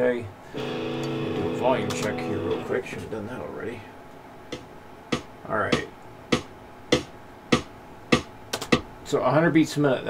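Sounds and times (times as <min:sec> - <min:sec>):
metronome clicking: 0:01.8 - 0:02.2
sharp clicks: 0:08.5 - 0:08.8.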